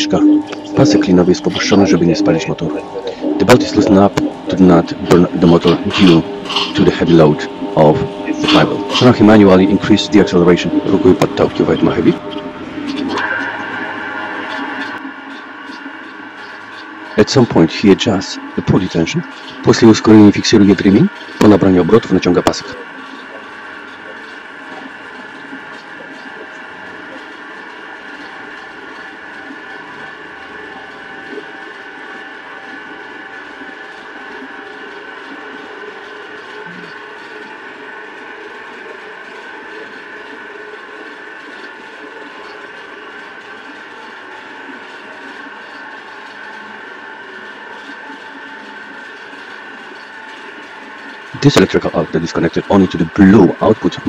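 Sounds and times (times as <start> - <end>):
electric motor whining: 0.0 - 54.0.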